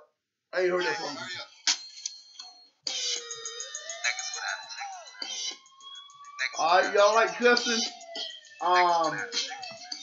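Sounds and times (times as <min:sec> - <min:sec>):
hip-hop track through speaker: 0:02.8 - 0:10.0.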